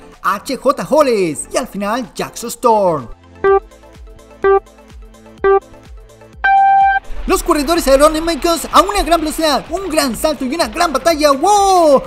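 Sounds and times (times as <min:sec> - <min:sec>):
longer higher beep: 0:03.4 - 0:03.6, 0:04.4 - 0:04.6, 0:05.4 - 0:05.7, 0:06.4 - 0:07.1
short low beep: 0:04.4 - 0:04.6, 0:05.4 - 0:05.6, 0:06.4 - 0:07.1.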